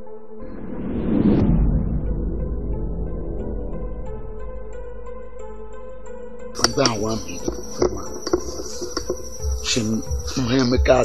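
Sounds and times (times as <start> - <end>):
man speaking: 6.6 - 9.0, 9.6 - 11.0
high-pitched insect drone: 6.6 - 11.0.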